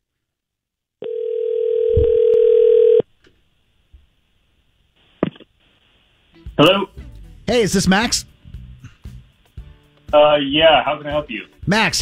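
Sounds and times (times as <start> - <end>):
telephone ringback tone: 1.0 - 3.0.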